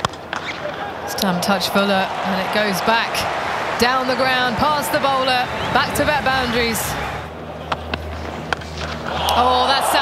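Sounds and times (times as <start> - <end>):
low stadium hum: 0.0 - 10.0.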